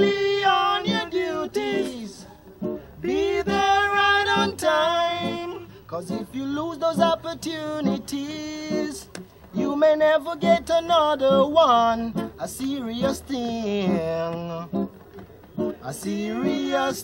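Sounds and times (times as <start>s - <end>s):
man singing reggae: 0.0s - 2.4s, 3.0s - 14.9s, 15.8s - 17.0s
acoustic guitar: 0.0s - 17.0s.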